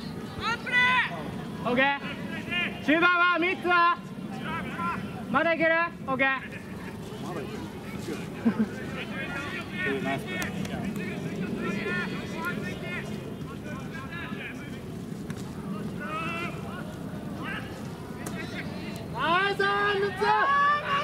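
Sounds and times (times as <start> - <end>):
players shouting: 0.0 - 5.7, 8.8 - 14.8, 15.4 - 21.0.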